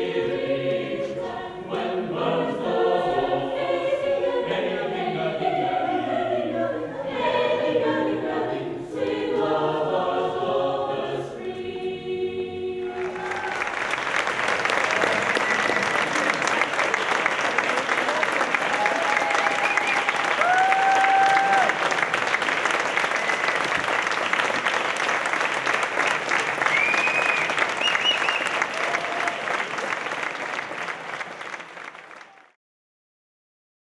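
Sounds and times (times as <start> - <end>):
audience applauding: 12.9 - 32.6.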